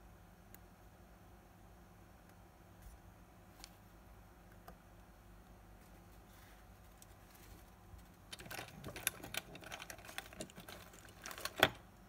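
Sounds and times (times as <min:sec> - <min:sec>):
watch movement clicks and rubbing: 0:06.9 - 0:11.8.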